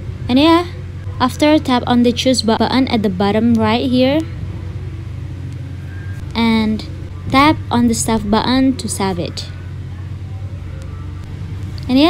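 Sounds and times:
steady low hum: 0:00.0 - 0:12.0
person speaking: 0:06.3 - 0:09.6.

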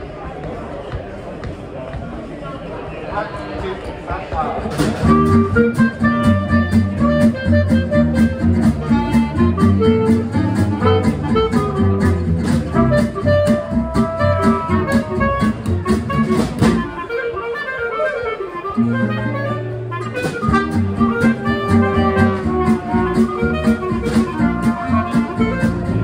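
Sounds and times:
small jazz band playing: 0:04.7 - 0:26.0
clarinet and trumpet melody: 0:05.0 - 0:26.0.

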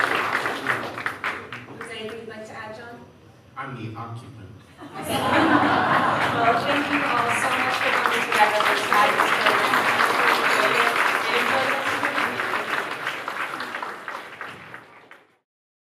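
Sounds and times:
audience applauding: 0:00.0 - 0:02.2, 0:05.0 - 0:15.4.

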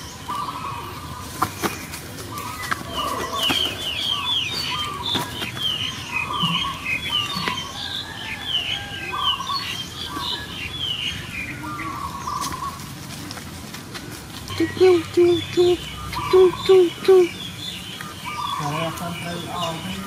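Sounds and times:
birds chirping: 0:00.0 - 0:20.0.

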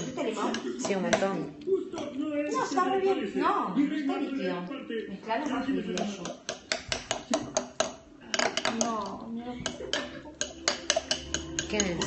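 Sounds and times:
metal fork clinking against glass bowl: 0:09.9 - 0:12.0.

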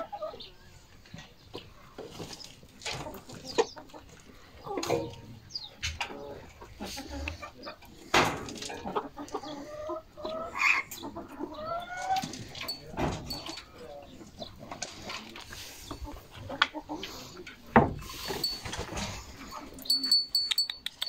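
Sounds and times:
hens clucking: 0:00.0 - 0:21.0.

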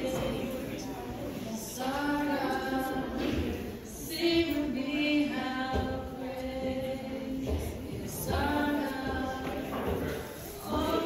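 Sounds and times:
group singing long notes: 0:00.0 - 0:11.0.

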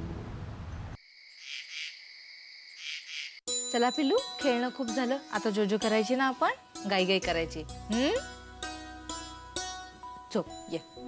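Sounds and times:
crickets chirping: 0:01.0 - 0:03.4.

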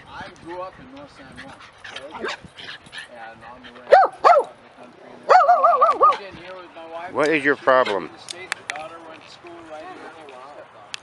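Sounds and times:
dog yipping: 0:03.9 - 0:04.5, 0:05.3 - 0:06.2.

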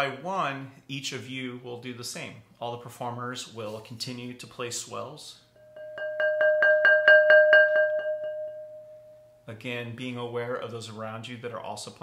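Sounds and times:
mallet roll on ceramic pot: 0:05.6 - 0:09.0.

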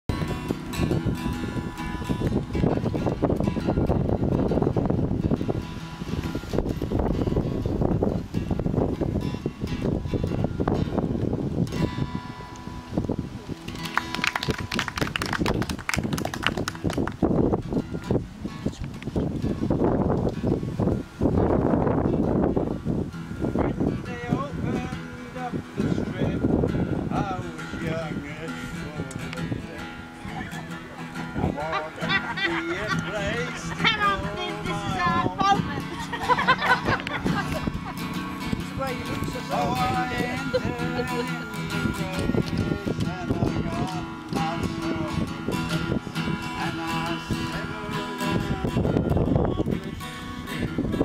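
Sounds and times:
acoustic guitar strumming: 0:00.1 - 0:51.0.

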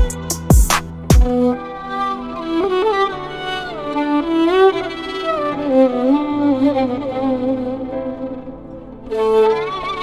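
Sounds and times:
violin slow melody: 0:00.0 - 0:10.0.

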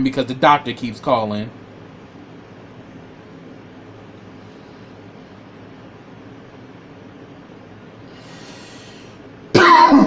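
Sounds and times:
faint intake of breath: 0:08.0 - 0:09.3
man coughing: 0:09.6 - 0:10.0.

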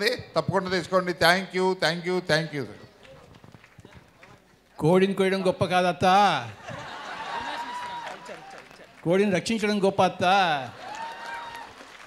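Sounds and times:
man speaking into a microphone: 0:00.0 - 0:02.9, 0:04.8 - 0:06.6, 0:09.0 - 0:10.8.

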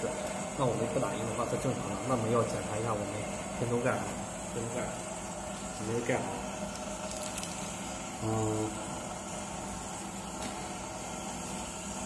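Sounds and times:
printer hum and hiss: 0:00.0 - 0:12.0.

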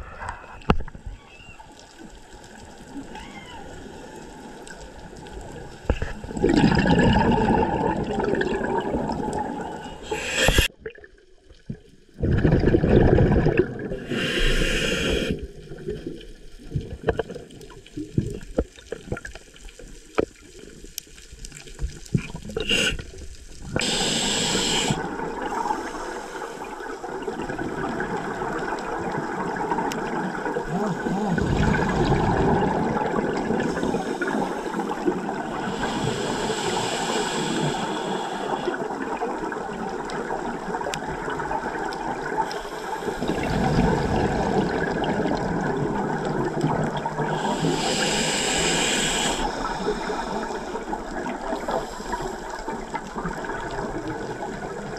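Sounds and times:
underwater bubbles surging: 0:00.0 - 0:54.9
scuba regulator breathing: 0:09.4 - 0:10.8, 0:13.9 - 0:15.5, 0:22.6 - 0:23.2, 0:23.8 - 0:26.9, 0:33.4 - 0:39.0, 0:42.4 - 0:43.6, 0:47.3 - 0:52.6.

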